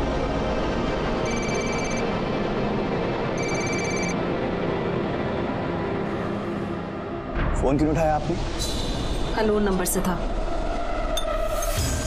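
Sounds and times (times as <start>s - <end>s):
phone ringtone ringing: 1.2s - 2.0s, 3.4s - 4.2s.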